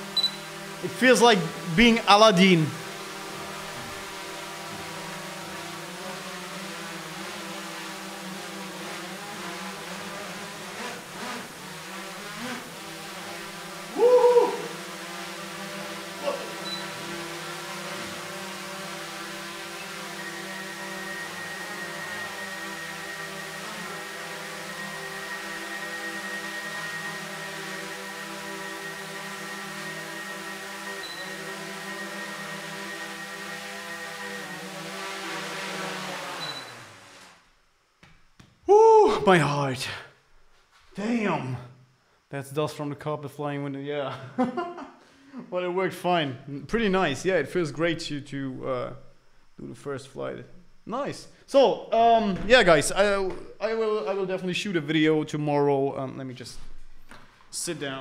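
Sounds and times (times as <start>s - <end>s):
quadcopter propellers humming: 0.0s - 37.4s.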